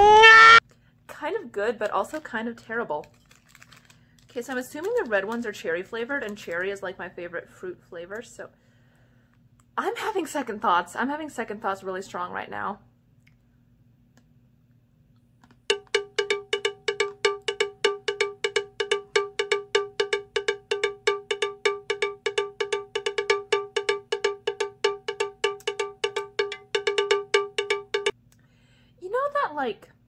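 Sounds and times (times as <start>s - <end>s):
bell-like note struck rapidly: 15.7s - 28.1s.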